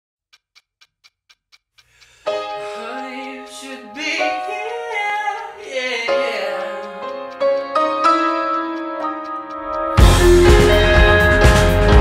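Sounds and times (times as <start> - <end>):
quiet clock-like ticks: 0.3 - 11.6
pop song: 2.3 - 7.1.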